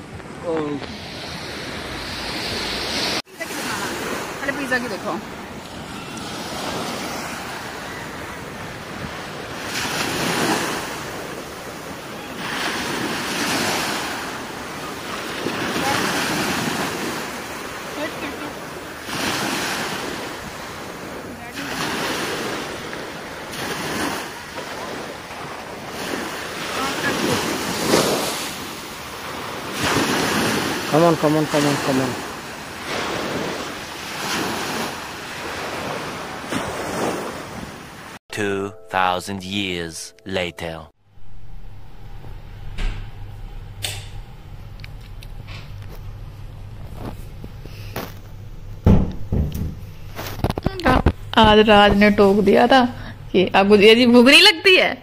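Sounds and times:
sea waves breaking on shore: 0.0 - 38.2.

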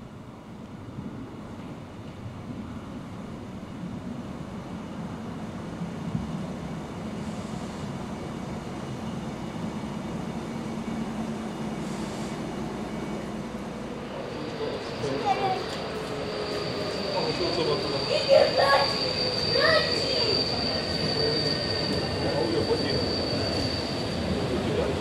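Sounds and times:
railcar rumbling along track: 0.0 - 25.0.

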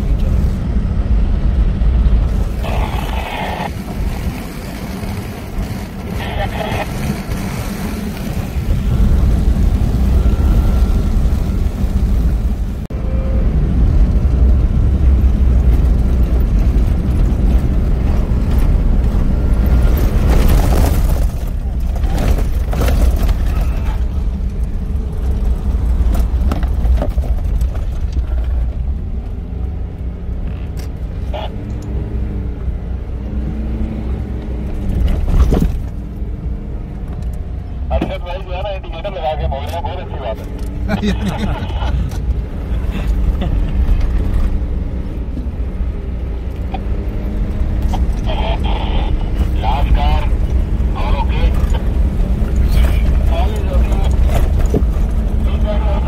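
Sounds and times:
engine and tyre rumble: 0.0 - 56.0.

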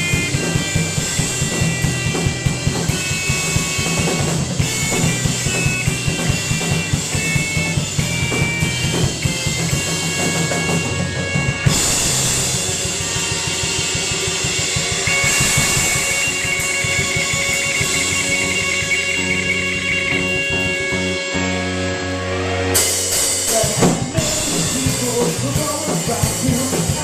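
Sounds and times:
garage rock band playing: 0.0 - 27.0
cymbals: 9.2 - 21.6.

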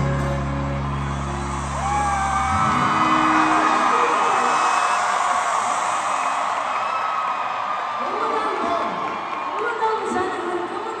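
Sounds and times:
crowd cheering: 0.0 - 11.0
high-pitched shouts and whoops: 0.7 - 10.0.

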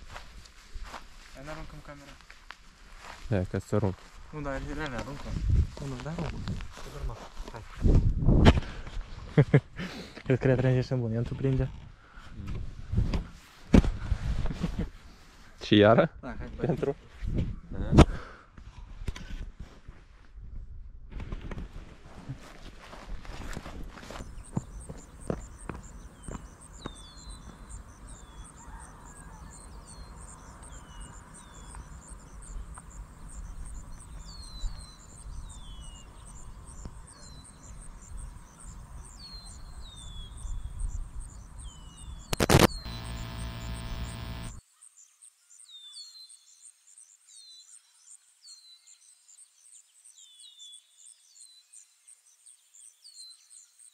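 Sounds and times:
birds chirping: 24.1 - 44.6.

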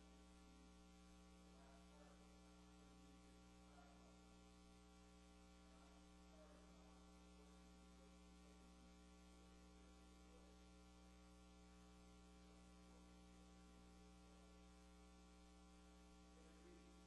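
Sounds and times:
faint electrical mains hum: 0.0 - 17.0.

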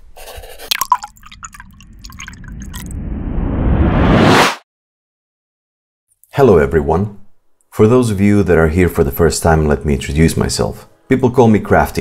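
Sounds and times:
low rumble: 1.4 - 4.4.

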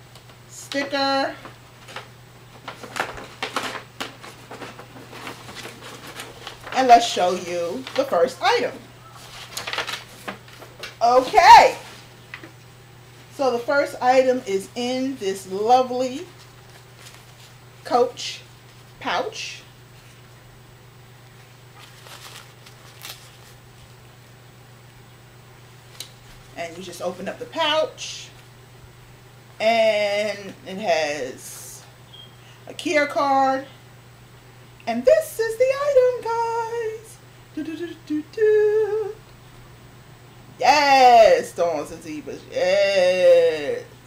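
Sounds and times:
steady low hum: 0.0 - 44.0
fabric pouch rustling: 21.8 - 23.6.

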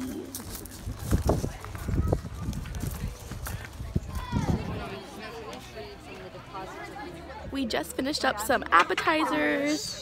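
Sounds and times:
footsteps crunching on gravel: 0.0 - 4.5
wind rumble on microphone: 0.4 - 5.1.

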